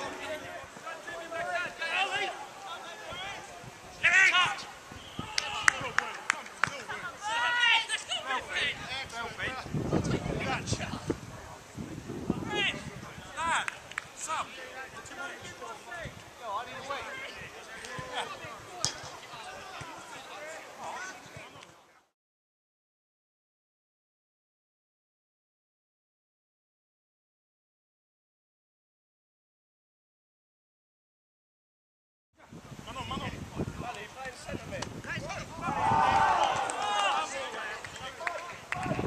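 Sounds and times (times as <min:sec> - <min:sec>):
footballers shouting: 0:00.0 - 0:09.2, 0:12.4 - 0:21.4, 0:35.2 - 0:39.0.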